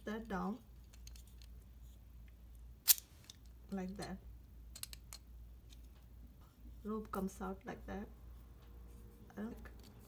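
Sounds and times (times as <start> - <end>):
plastic toy handling: 0.6 - 2.0.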